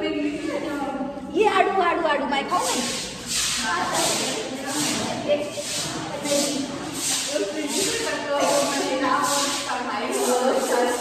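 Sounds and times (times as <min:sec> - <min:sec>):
person talking: 0:00.0 - 0:11.0
hissing swish: 0:02.6 - 0:11.0.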